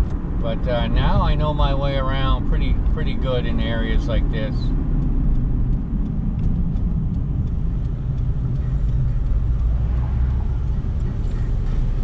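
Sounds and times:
car engine and tyres rumble: 0.0 - 12.0
faint regular ticks: 3.8 - 12.0.

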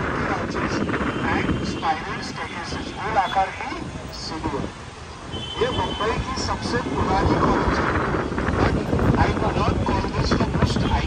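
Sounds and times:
traffic noise: 0.0 - 11.0
wind rumble: 0.0 - 11.0.

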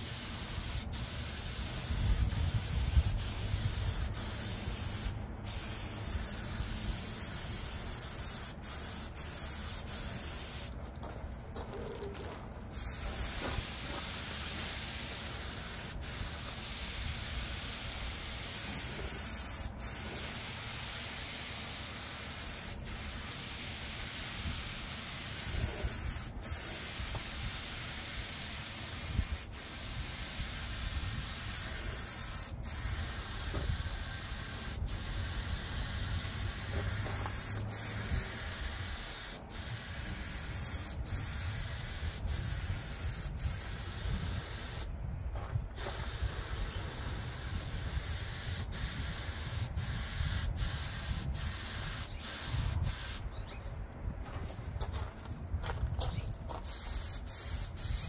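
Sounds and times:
paint spray gun hissing: 0.0 - 44.9, 45.6 - 53.6, 56.6 - 58.0.

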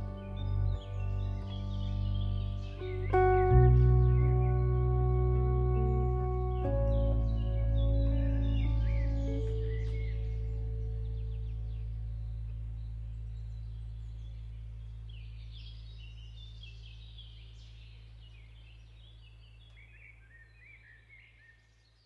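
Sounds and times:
acoustic guitar notes ringing: 0.0 - 11.7
small birds chirping: 0.0 - 22.0.

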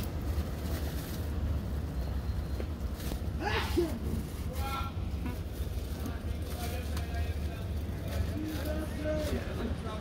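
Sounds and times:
faint voices talking: 3.4 - 10.0.

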